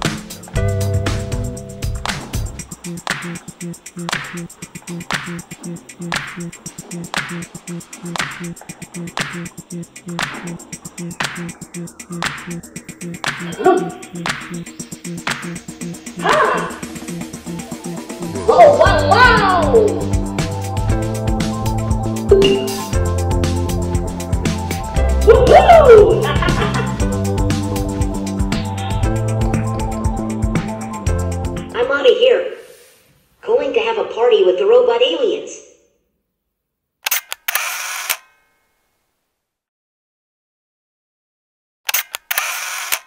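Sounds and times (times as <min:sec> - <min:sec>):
dance music with steady beat: 0:00.0 - 0:31.8
quick clicks: 0:37.0 - 0:38.3, 0:41.9 - 0:43.0.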